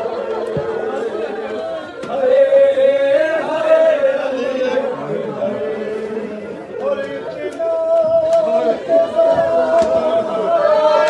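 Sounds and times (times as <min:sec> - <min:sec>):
men chanting in unison: 0:01.1 - 0:11.0.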